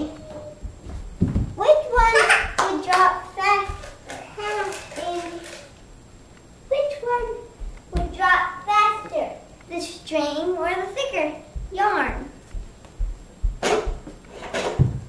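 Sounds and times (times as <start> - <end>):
young children talking: 1.6 - 5.7
low thumps: 7.1 - 8.3, 11.5 - 14.2.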